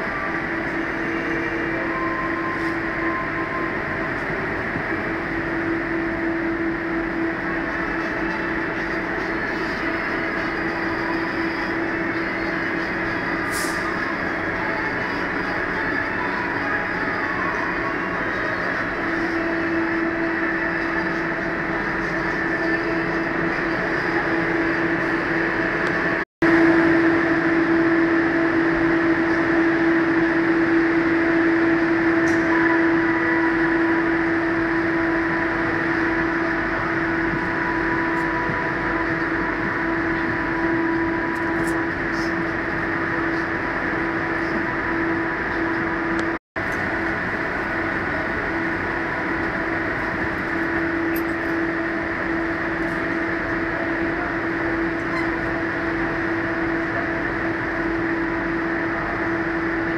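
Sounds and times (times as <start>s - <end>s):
constant hum: 0.0s - 59.9s
train carriage rumble: 0.0s - 59.9s.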